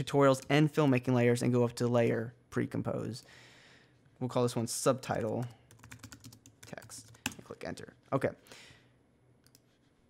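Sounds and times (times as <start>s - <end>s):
person speaking: 4.2s - 5.7s, 6.3s - 8.5s.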